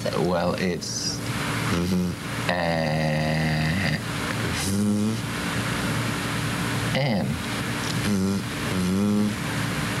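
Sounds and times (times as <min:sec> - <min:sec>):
man sounding out a word slowly: 0:01.7 - 0:05.3, 0:06.9 - 0:09.4.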